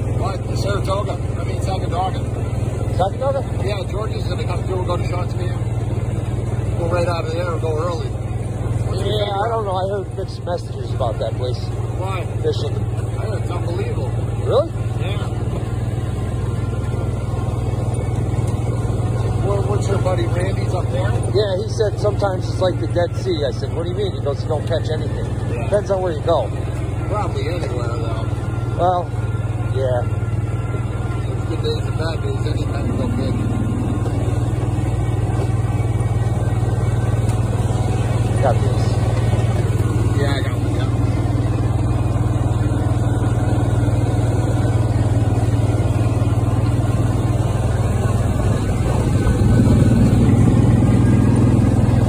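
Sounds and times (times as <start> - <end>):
vehicle engine droning: 0.0 - 52.0.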